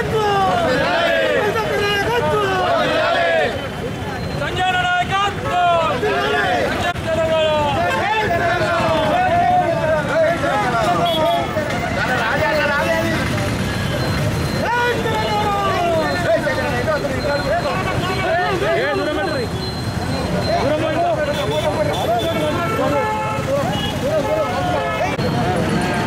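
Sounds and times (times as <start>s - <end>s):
crowd of men shouting: 0.0s - 3.7s, 4.4s - 13.3s, 14.6s - 16.8s
street traffic rumble: 0.0s - 26.0s.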